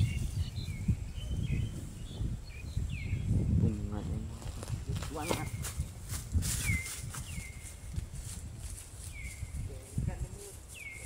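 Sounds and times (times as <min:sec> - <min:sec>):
bird chirping: 0:00.0 - 0:04.1, 0:05.1 - 0:08.0, 0:09.0 - 0:09.8, 0:10.6 - 0:11.0
animals grazing in dry grass: 0:00.0 - 0:11.0.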